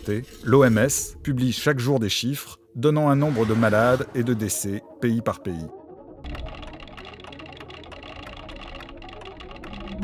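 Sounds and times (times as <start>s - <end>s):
rapid light clicks: 6.2s - 10.0s.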